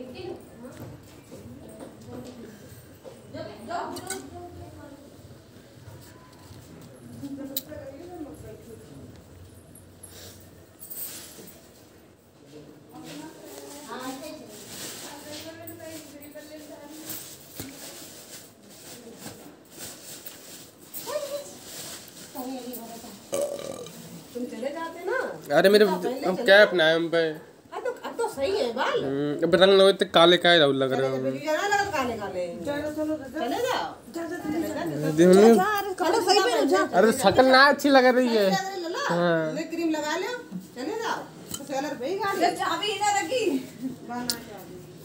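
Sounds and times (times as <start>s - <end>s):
person making vocal sounds: 23.3s - 24.0s.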